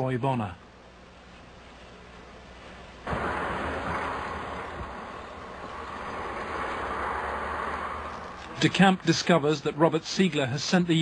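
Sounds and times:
rushing outdoor noise: 2.6 - 11.0
low rumble: 3.1 - 8.4.

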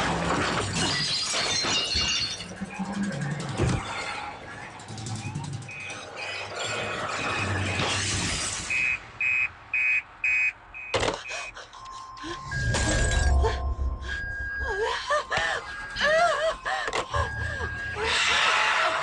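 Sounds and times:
shattering and crashing effects: 0.0 - 2.8, 5.9 - 8.9.

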